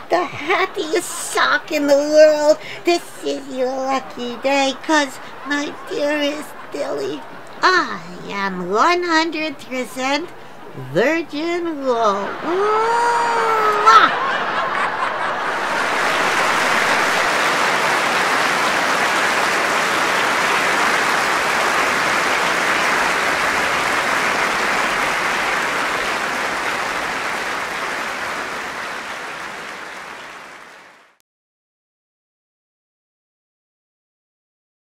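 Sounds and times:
audience applauding: 12.4s - 31.2s.

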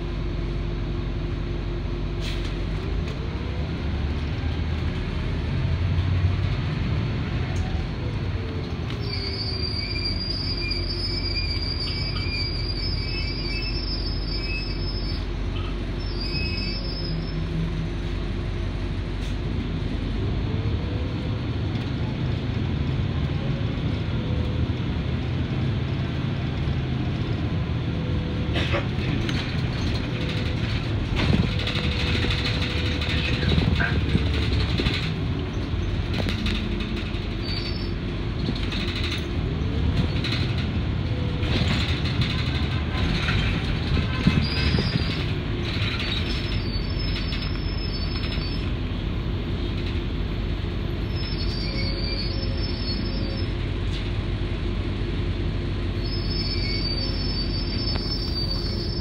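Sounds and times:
bus engine rumble: 0.0s - 59.0s
road noise: 0.0s - 59.0s
bus body rattling: 21.0s - 59.0s.

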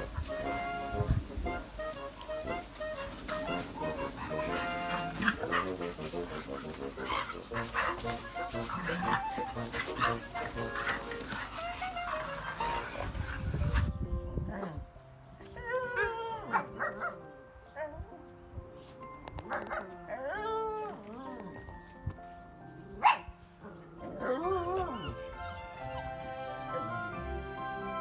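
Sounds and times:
light background music: 0.0s - 28.0s
dogs scuffling at play: 1.8s - 14.0s
dogs whining howls: 7.8s - 13.2s, 15.4s - 17.1s, 24.0s - 27.1s
dog barking: 16.5s - 17.2s, 23.0s - 23.3s.

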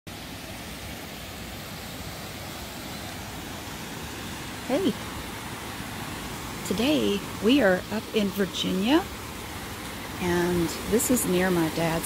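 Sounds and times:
creek water rushing: 0.1s - 12.0s.

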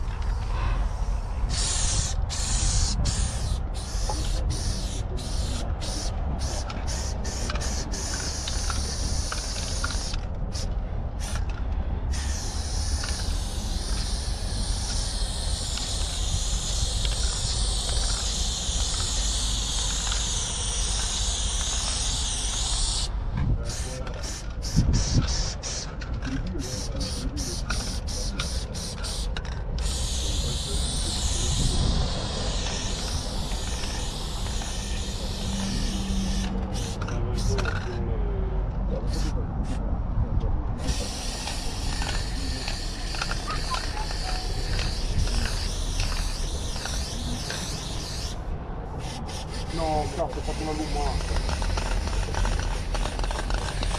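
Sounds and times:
spray paint can hissing: 0.0s - 38.0s, 39.1s - 39.8s, 40.8s - 53.9s.

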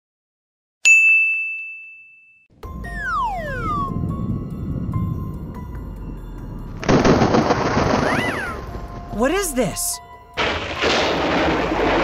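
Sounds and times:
low rumbling noise: 2.6s - 9.1s.

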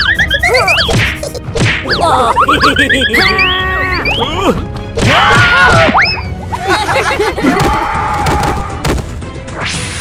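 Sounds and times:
squeaky sliding high-pitched sounds: 0.0s - 1.0s.

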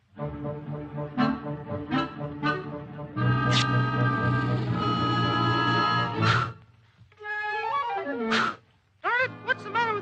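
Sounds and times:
orchestral cartoon music: 0.0s - 6.6s, 7.2s - 10.0s.

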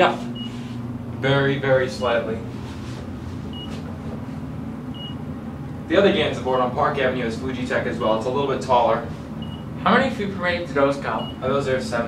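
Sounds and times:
elevator cab humming: 0.0s - 12.0s.

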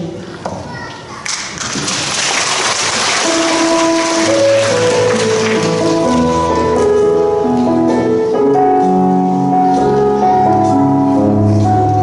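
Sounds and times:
audience applause: 1.2s - 6.4s
instrumental music with sustained notes: 3.5s - 12.0s.

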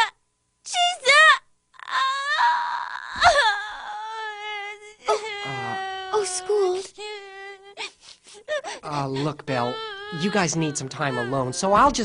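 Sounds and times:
girl wailing: 0.7s - 12.0s.

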